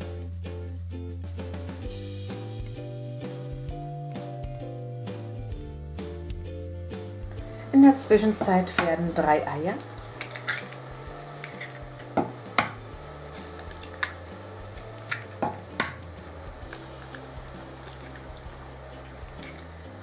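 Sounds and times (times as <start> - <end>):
soft background music: 0.0 - 20.0.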